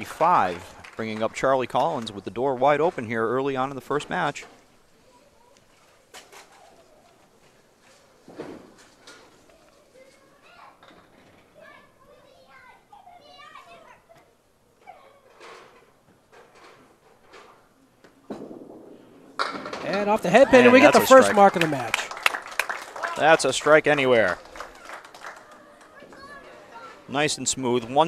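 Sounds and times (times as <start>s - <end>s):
bowling ball rolling: 16.5s - 21.7s
knocks from bowling lanes: 18.3s - 20.2s
bowling pins crashing: 18.3s - 21.4s
faint chatter of onlookers: 20.3s - 27.8s.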